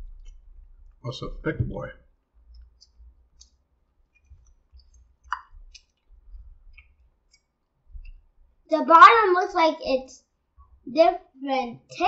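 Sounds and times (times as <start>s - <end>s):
soft low bumps: 0.0s - 2.0s
mouth clicks and chewing: 4.2s - 8.2s.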